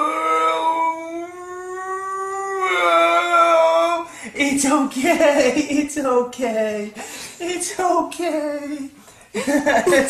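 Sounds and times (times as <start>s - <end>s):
adult mock-crying wail: 0.0s - 4.1s.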